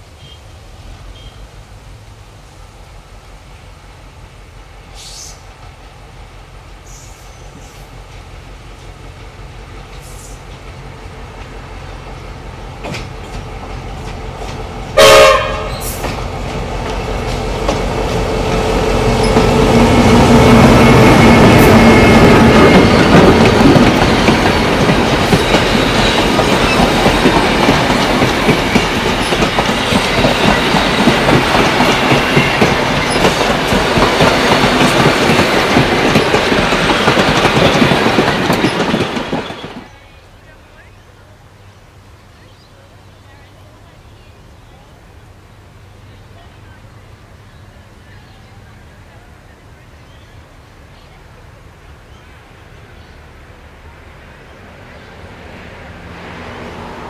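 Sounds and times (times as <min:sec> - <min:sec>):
diesel locomotive engine: 0:00.0 - 0:57.0
train wheels rattling over track: 0:06.7 - 0:40.1
train horn blast: 0:15.0 - 0:16.0.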